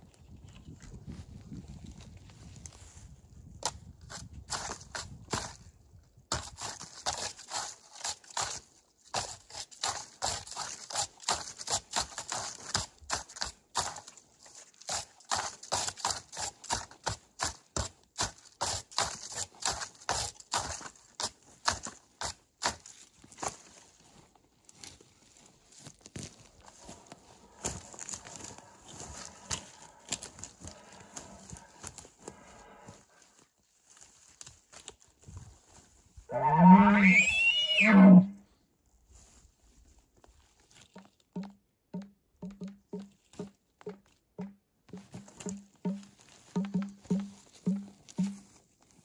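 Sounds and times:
brush and twigs crackling: 0:18.4 - 0:36.2
elk bugle call: 0:36.3 - 0:38.4.

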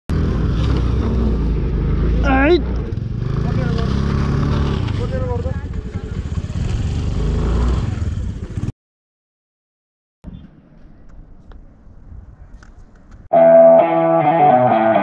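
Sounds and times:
scooter engine climbing: 0:00.1 - 0:08.7.

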